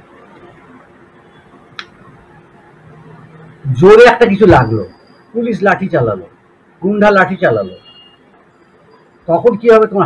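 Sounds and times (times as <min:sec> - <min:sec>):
faint background hiss: 0:00.0 - 0:10.0.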